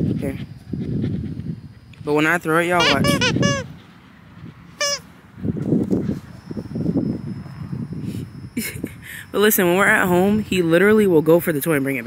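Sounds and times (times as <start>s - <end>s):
dog toy squeak: 2.8s - 3.7s, 4.8s - 5.0s.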